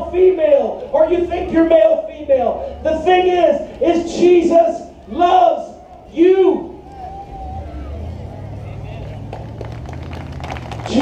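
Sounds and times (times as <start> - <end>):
faint voices: 0.0 - 9.9.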